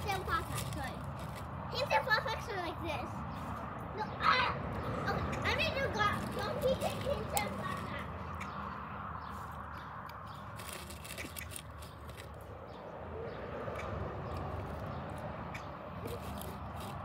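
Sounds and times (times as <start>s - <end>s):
child's voice: 0.0s - 1.0s, 1.7s - 3.3s, 3.9s - 8.2s.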